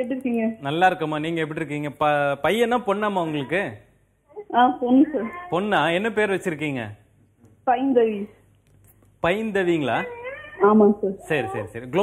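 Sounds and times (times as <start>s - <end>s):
person speaking: 2.7s - 3.8s, 9.0s - 12.0s.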